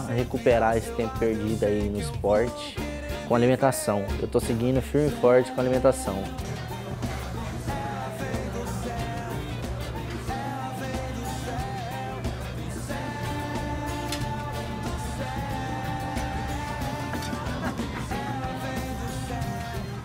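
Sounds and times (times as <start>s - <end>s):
song with wavering melody: 4.1s - 20.0s
steady low bass: 5.7s - 20.0s.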